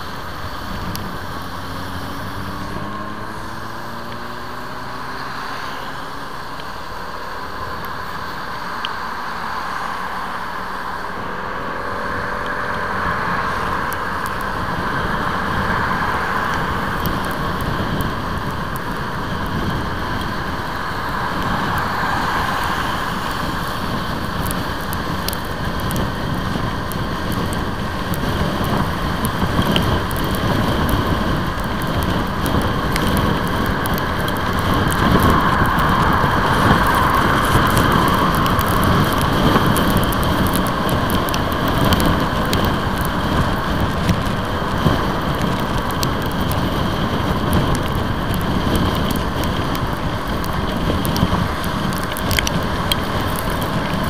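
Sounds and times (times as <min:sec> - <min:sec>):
raindrops ticking on microphone: 0:00.0 - 0:54.0
wet road spray: 0:00.0 - 0:54.0
wind on microphone: 0:00.0 - 0:54.0.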